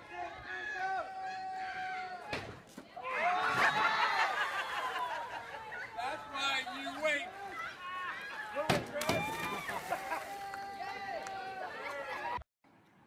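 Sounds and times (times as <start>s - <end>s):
people calling and shouting: 0.0s - 12.4s.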